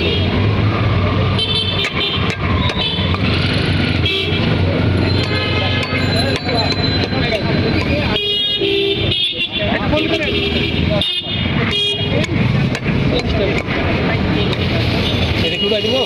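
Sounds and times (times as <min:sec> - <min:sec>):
vehicle horns tooting: 0:01.3 - 0:03.2, 0:04.0 - 0:12.3, 0:15.0 - 0:16.0
people talking: 0:04.5 - 0:08.4, 0:09.3 - 0:16.0.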